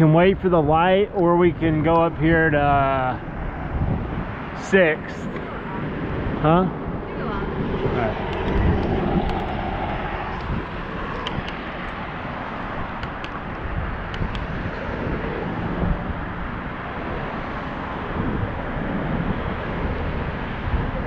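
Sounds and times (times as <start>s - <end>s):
wind rush on microphone: 0.0s - 21.0s.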